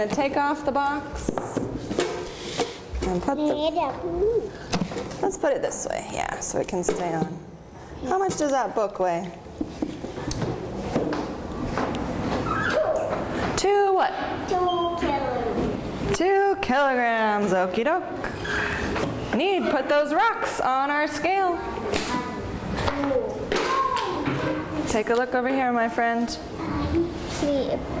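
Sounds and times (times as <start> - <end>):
murmur of children: 21.6 - 24.9.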